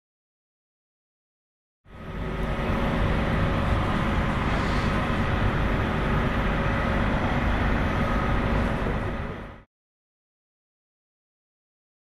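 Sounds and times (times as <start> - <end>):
bus engines idling: 1.9 - 9.6
constant hum: 1.9 - 9.7.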